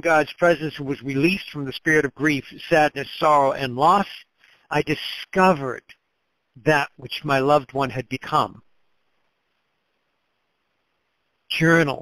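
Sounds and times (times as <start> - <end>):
faint recording hiss: 0.0 - 12.0.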